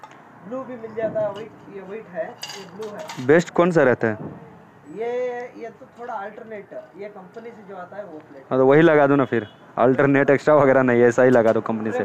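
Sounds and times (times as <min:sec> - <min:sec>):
metal plates clinking: 0:01.3 - 0:03.4.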